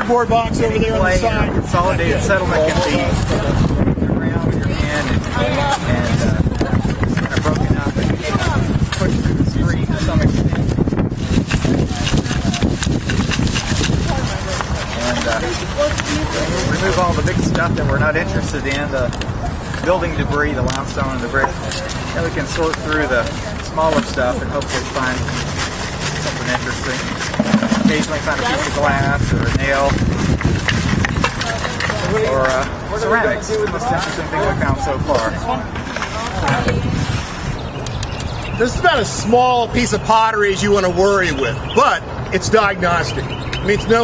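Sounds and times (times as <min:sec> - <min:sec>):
rubble scraping in a sifting screen: 0:23.8 - 0:28.8.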